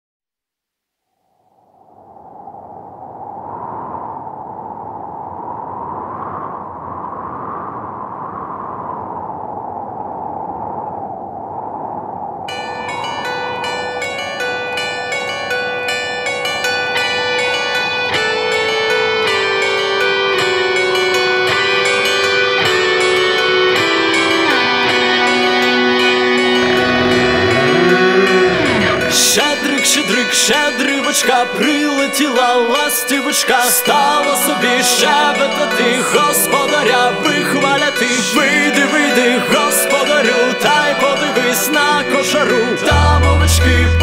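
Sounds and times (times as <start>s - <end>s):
low descending line: 1.4s - 44.0s
soft hazy swell: 1.6s - 44.0s
plucked string instrument: 13.1s - 44.0s.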